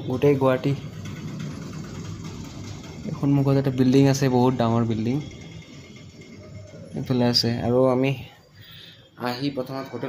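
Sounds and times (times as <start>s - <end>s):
street traffic noise: 0.0s - 10.0s.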